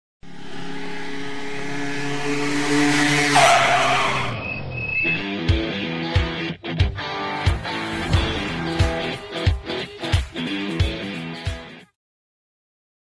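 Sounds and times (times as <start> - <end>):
car engine running: 0.2 - 4.4, 7.5 - 11.3
tyre screech: 3.0 - 5.4
music with a beat: 5.2 - 12.0.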